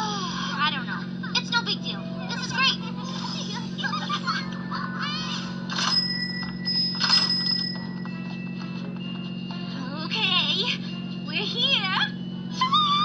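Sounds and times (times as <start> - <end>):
steady low hum: 0.0 - 13.0
light music with chime tones: 1.1 - 13.0.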